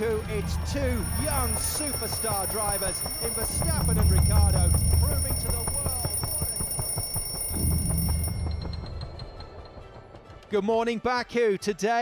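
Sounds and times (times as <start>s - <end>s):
mechanical alarm clock ringing: 0.0s - 9.6s.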